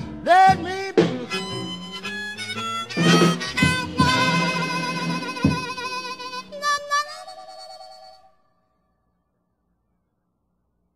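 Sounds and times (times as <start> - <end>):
wavering harmonica note: 1.2 - 8.6.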